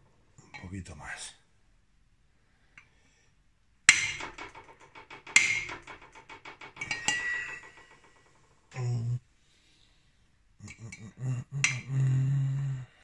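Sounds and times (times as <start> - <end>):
metal pipe rattling: 3.9 - 9.0
metallic ringing: 3.9 - 9.2.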